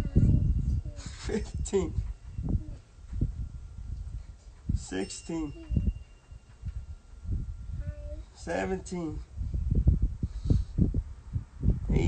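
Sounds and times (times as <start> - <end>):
thumps and buffeting on microphone: 0.0 - 4.9, 5.5 - 7.9, 9.2 - 12.0.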